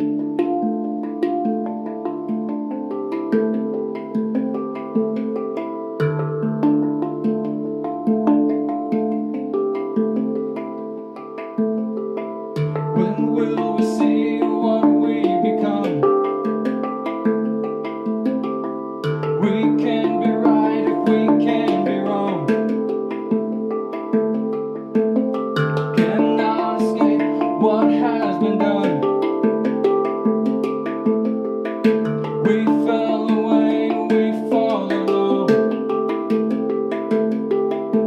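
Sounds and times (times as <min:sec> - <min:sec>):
handpan notes: 0:00.0 - 0:38.0.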